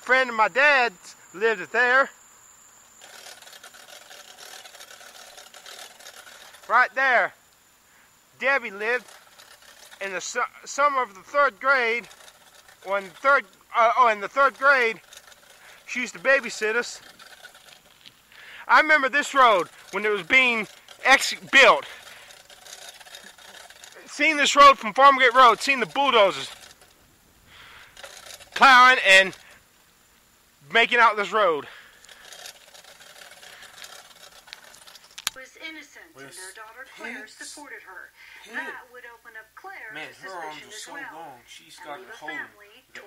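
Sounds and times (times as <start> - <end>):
faint outdoor background noise: 0.0 - 43.0
fast mechanical ticking: 2.8 - 7.6, 8.4 - 29.7, 30.8 - 35.4.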